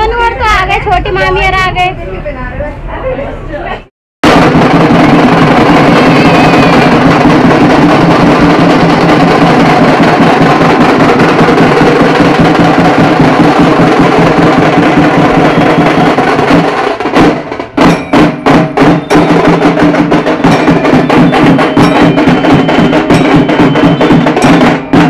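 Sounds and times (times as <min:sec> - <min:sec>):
steel drums beaten with sticks: 0:04.2 - 0:25.0.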